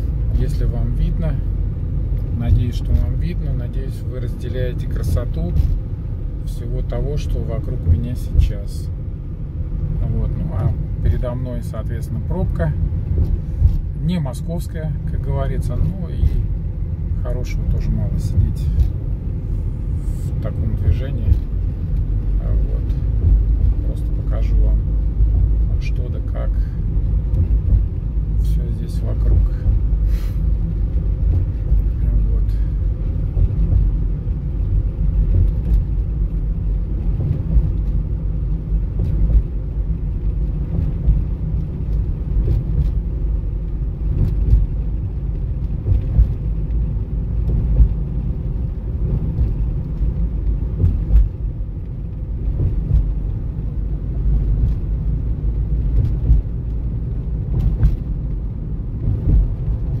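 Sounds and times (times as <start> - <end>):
car tyres and engine rumble: 0.0 - 60.0.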